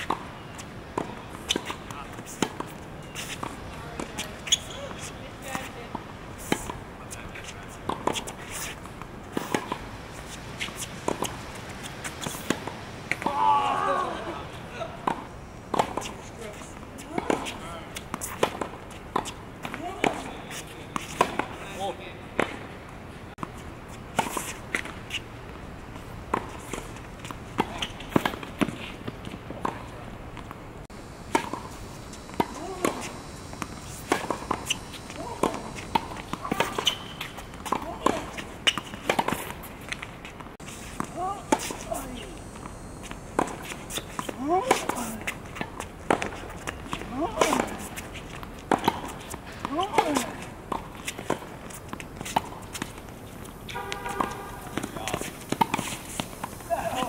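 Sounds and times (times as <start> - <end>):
racket striking tennis ball: 7.4 - 13.5, 17.0 - 21.6, 26.3 - 30.5, 31.3 - 42.7, 43.3 - 57.0
footsteps: 31.3 - 57.0
ball bouncing on hard court: 53.7 - 56.0.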